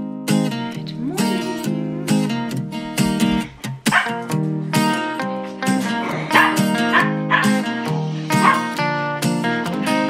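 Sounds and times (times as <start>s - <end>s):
acoustic guitar music: 0.0s - 10.0s
small dogs yipping and barking: 2.9s - 4.3s, 5.8s - 8.8s.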